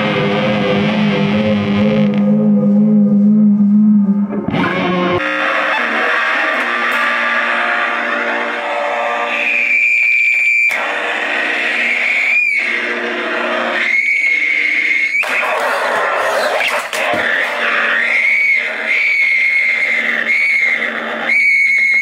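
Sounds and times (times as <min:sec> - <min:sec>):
distorted electric guitar: 0:00.0 - 0:22.0
high feedback whine: 0:00.0 - 0:22.0.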